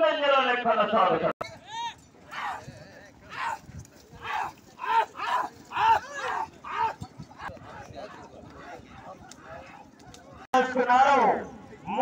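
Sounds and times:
men shouting: 0:01.6 - 0:09.9.

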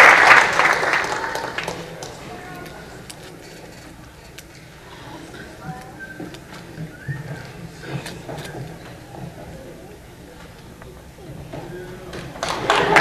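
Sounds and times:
audience murmur: 0:00.0 - 0:13.0
footsteps: 0:01.7 - 0:12.6.

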